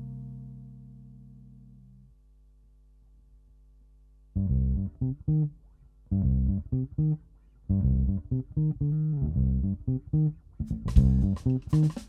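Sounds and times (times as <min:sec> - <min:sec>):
electric bass guitar plucked notes: 0:00.0 - 0:02.1, 0:04.3 - 0:12.0.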